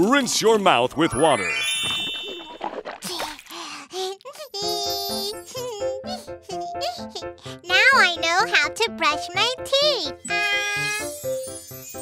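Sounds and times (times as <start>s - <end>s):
bright musical jingle: 1.1s - 2.7s
water swishing in mouth: 2.2s - 3.7s.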